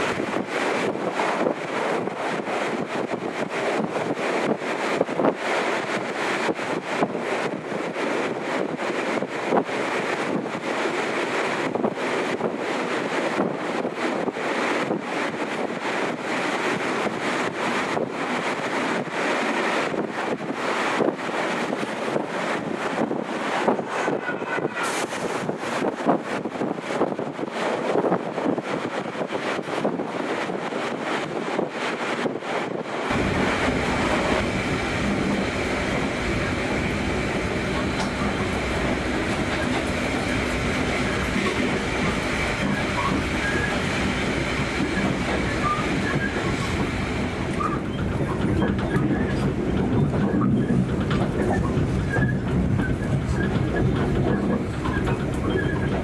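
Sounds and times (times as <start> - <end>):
rushing wind: 0.0 - 56.0
train carriage rumble: 0.0 - 56.0
train wheels clattering on rails: 0.0 - 56.0.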